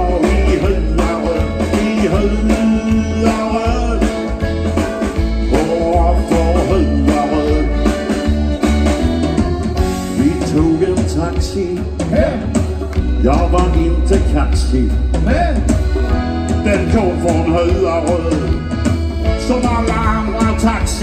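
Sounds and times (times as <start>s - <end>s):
man singing into a microphone: 0.0s - 4.6s, 5.2s - 8.3s, 10.1s - 15.7s, 16.6s - 21.0s
bass line: 0.0s - 21.0s
drums: 0.0s - 21.0s
electric guitar: 0.0s - 21.0s.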